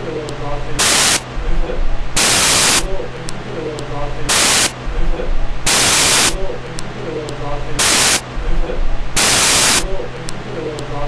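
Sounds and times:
steady low hum: 0.0 - 11.0
bursts of static hiss: 0.7 - 3.5, 4.2 - 10.5.

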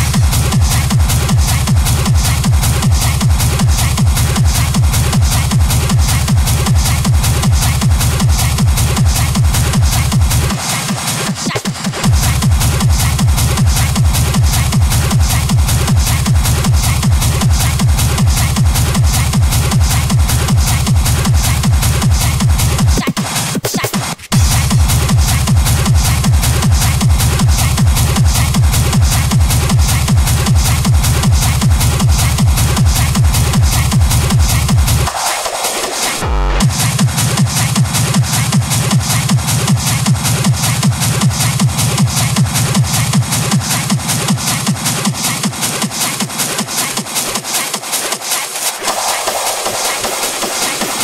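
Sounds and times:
techno music: 0.0 - 51.0.

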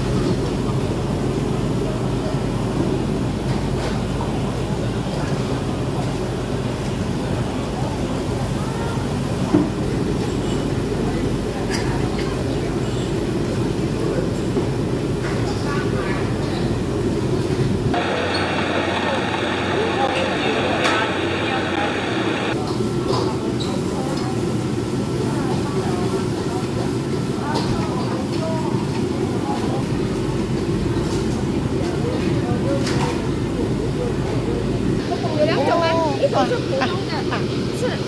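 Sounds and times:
indistinct chatter: 0.0 - 38.0
steady restaurant rumble: 0.0 - 38.0.

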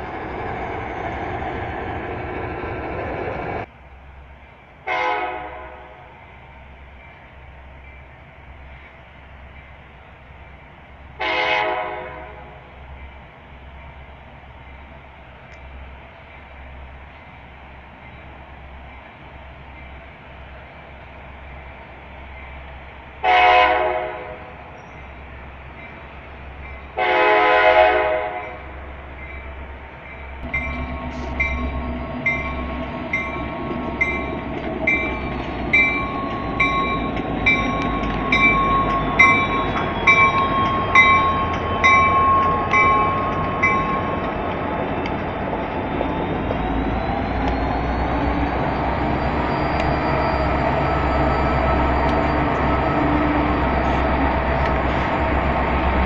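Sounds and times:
locomotive engines and wheels rolling: 0.0 - 4.8, 12.5 - 23.4, 24.3 - 27.6, 28.3 - 56.0
locomotive horn blasts: 4.9 - 6.1, 11.2 - 12.6, 23.2 - 24.5, 27.0 - 28.6
regular ringing tick: 30.4 - 44.4.

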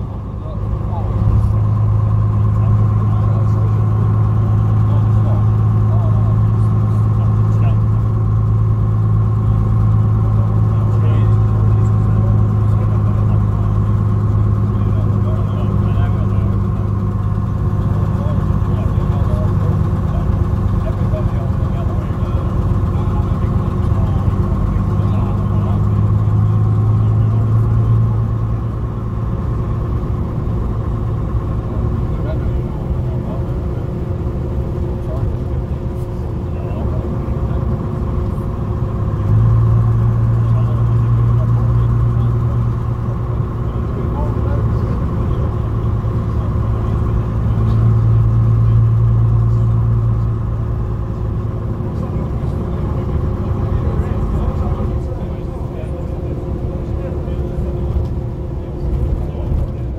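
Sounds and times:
diesel coach engine running: 0.0 - 59.9.

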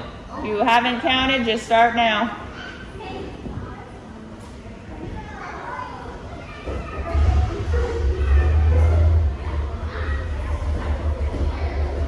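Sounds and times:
children's voices in a hall: 0.0 - 12.0
heavy bass music: 7.1 - 12.0.

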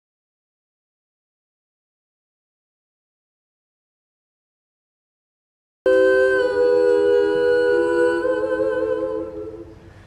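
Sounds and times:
voices humming in harmony: 5.9 - 10.0.

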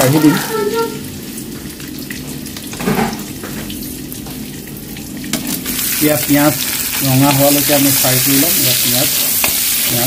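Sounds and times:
hot oil sizzling and crackling: 0.0 - 10.0.

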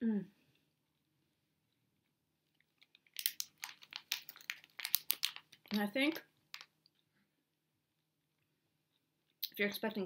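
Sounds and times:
candy bag crinkling: 2.5 - 6.9.

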